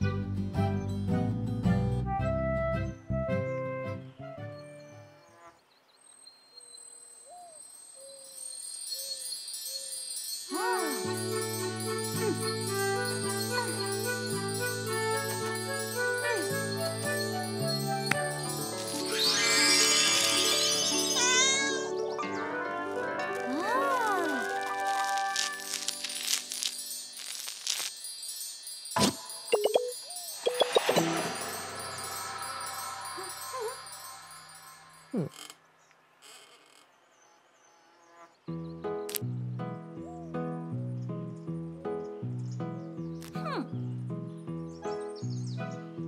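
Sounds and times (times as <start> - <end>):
shimmering magic chimes: 7.6 - 21.8, 23.7 - 35.5.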